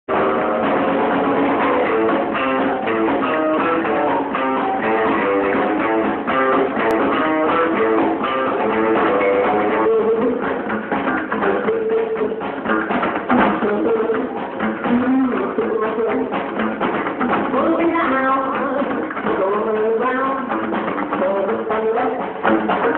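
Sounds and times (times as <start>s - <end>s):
electric guitar: 0.0s - 22.9s
muffled live rockabilly band: 0.0s - 22.9s.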